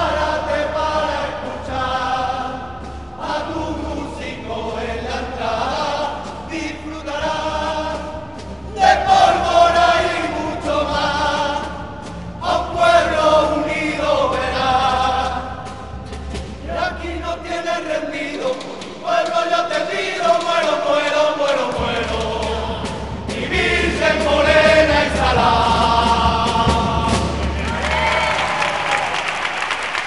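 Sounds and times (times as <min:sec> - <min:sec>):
men singing together: 0:00.0 - 0:16.0, 0:16.6 - 0:27.6.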